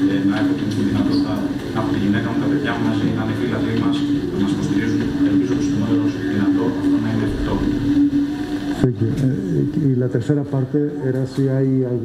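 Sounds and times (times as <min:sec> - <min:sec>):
man speaking: 0:00.0 - 0:07.9, 0:08.8 - 0:12.0
steady humming drone: 0:00.0 - 0:12.0.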